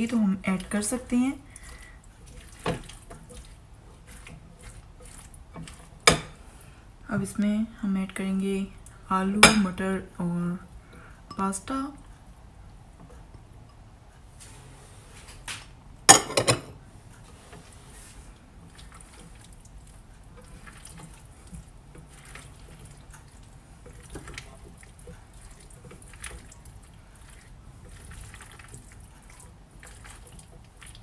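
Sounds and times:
spatula squelching wet salad: 0.1s - 6.7s, 17.1s - 31.0s.

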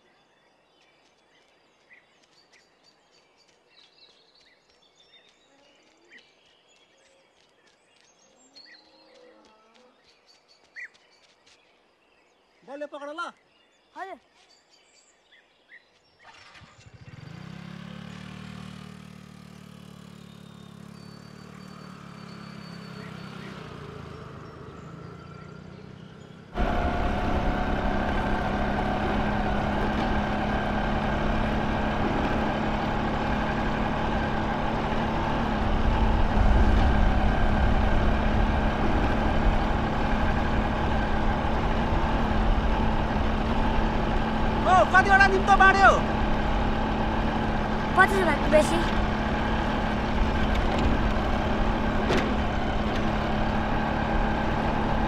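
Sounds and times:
motorcycle engine running: 16.4s - 55.0s.

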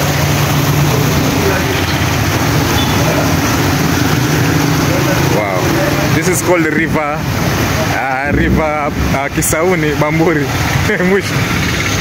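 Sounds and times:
floodwater rushing over ledge: 0.0s - 12.0s.

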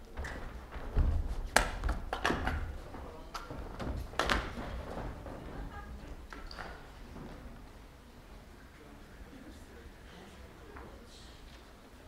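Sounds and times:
footsteps on stage floor: 0.0s - 7.8s.

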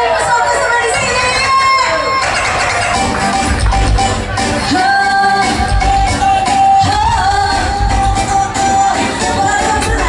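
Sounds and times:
live band keyboard music: 0.0s - 10.0s
heavy bass beat: 2.7s - 10.0s.

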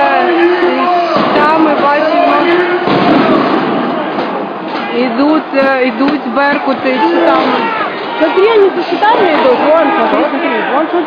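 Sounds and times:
crowd din: 0.0s - 11.0s
people's raised voices: 0.0s - 11.0s.

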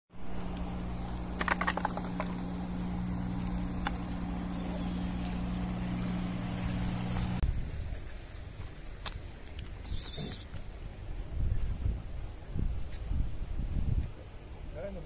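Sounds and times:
engine humming: 0.1s - 7.4s.

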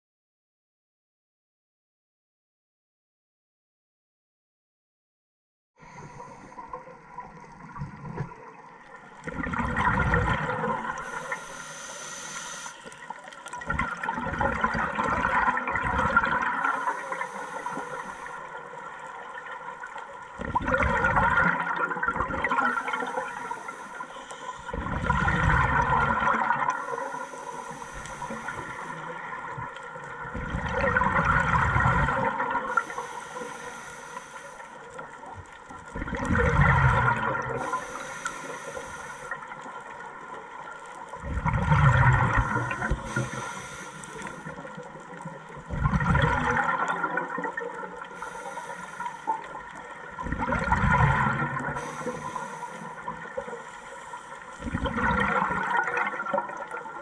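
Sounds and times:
gurgling exhaled bubbles: 6.7s - 11.7s, 13.0s - 53.6s, 54.4s - 57.0s
regulator inhaling hiss: 10.9s - 13.1s, 16.6s - 18.8s, 22.6s - 24.8s, 26.7s - 29.3s, 32.7s - 35.0s, 37.6s - 39.7s, 42.4s - 44.8s, 48.0s - 49.8s, 51.7s - 54.4s.

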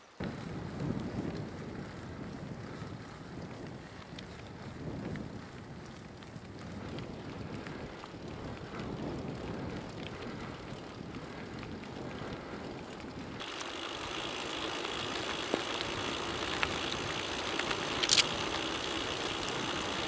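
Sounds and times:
wind rushing over microphone: 0.2s - 20.0s
small clicks: 11.2s - 20.0s
tyres hissing on wet asphalt: 13.4s - 20.0s.

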